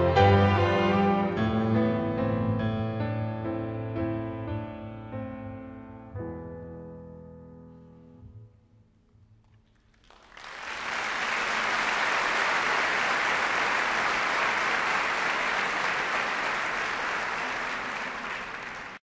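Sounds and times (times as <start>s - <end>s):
audience applauding: 9.6s - 19.0s.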